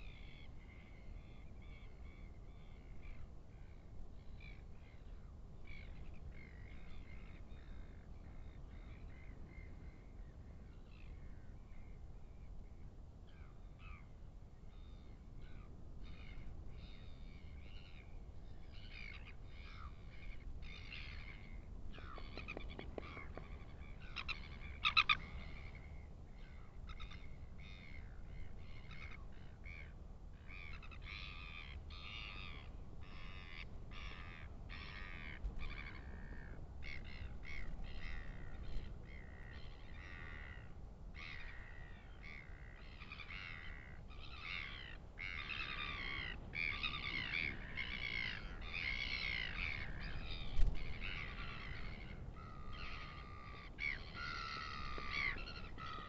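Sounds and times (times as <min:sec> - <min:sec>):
birds calling harshly: 0:18.8 - 0:29.9, 0:41.2 - 0:56.0.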